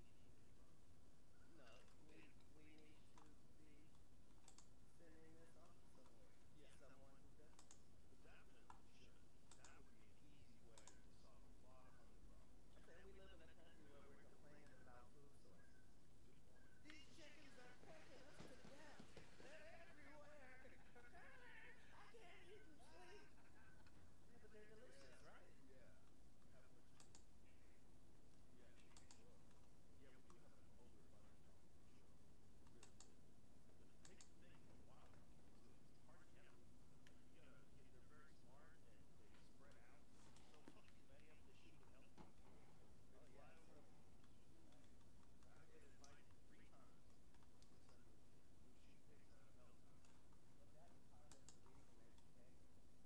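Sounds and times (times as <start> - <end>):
computer keys clicking: 4.4 - 4.7, 7.5 - 7.8, 28.9 - 29.7, 51.3 - 52.3
faint voices: 5.0 - 27.8.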